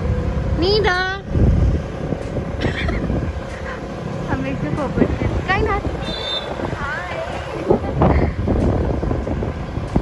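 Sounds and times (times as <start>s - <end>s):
scooter road noise: 0.0s - 10.0s
wind buffeting microphone: 0.0s - 10.0s.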